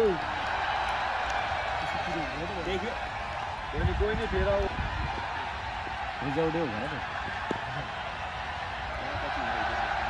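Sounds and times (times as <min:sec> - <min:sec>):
murmur of distant voices: 0:00.0 - 0:10.0
open-air noise: 0:00.0 - 0:10.0.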